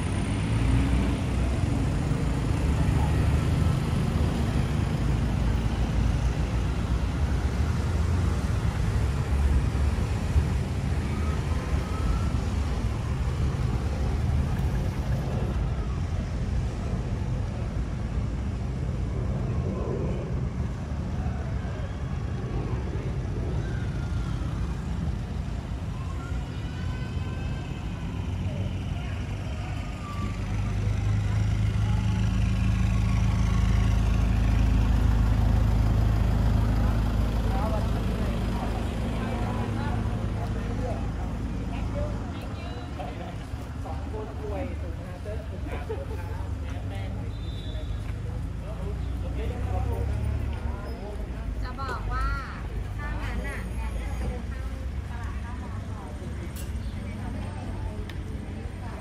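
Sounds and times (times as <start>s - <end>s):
faint people talking: 0.0s - 59.0s
van engine idling: 30.5s - 47.2s.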